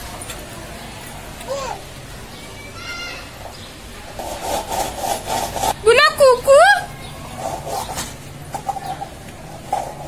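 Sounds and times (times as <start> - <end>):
plastic container scraping on concrete: 4.1 - 5.8, 7.3 - 10.0.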